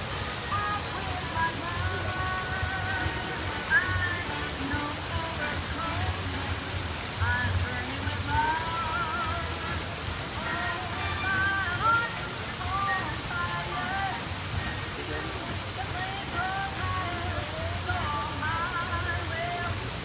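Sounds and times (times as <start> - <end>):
steady rushing noise: 0.0 - 20.0.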